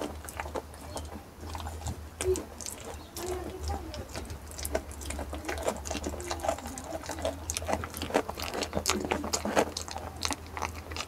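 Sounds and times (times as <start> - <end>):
goat chewing wet crunching: 0.0 - 11.0.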